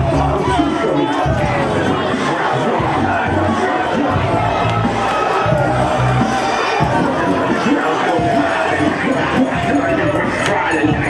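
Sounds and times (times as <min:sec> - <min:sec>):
crowd shouting and yelling: 0:00.0 - 0:11.0
loud music with heavy bass: 0:00.0 - 0:11.0.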